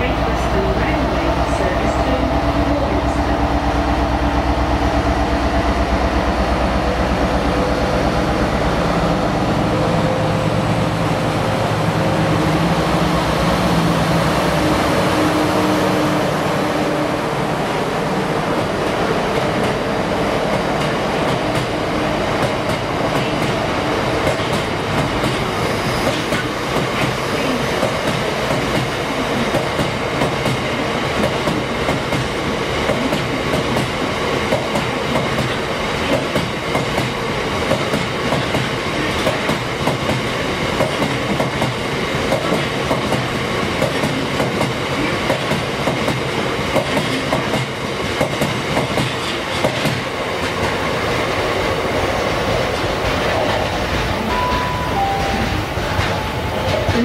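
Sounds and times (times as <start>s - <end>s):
freight train rolling past: 0.0s - 57.0s.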